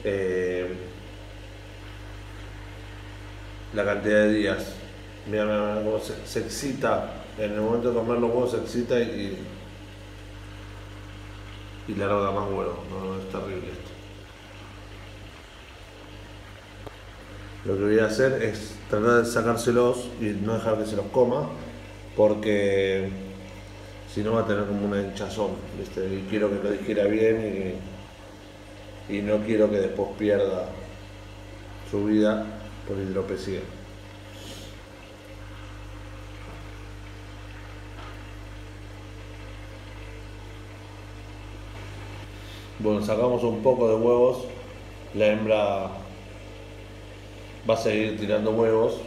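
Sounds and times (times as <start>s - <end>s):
background hum and hiss: 0.0s - 49.0s
faint hiss: 34.2s - 35.0s.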